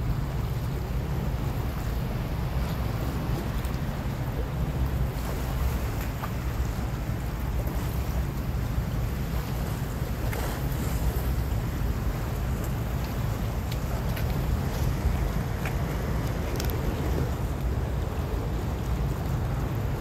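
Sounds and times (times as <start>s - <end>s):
choppy sea water: 0.0s - 20.0s
wind buffeting microphone: 0.0s - 20.0s.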